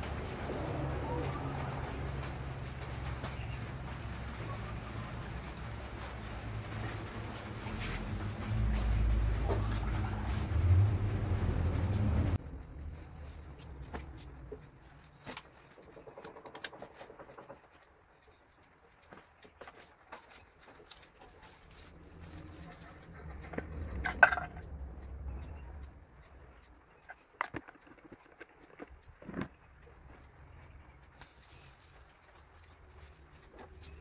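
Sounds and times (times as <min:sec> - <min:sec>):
small irregular clicks: 0:12.6 - 0:34.0.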